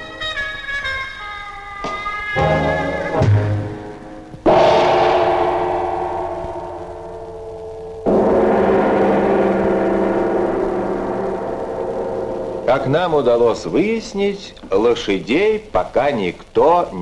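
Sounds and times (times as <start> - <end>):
gong strikes: 4.4 - 14.7.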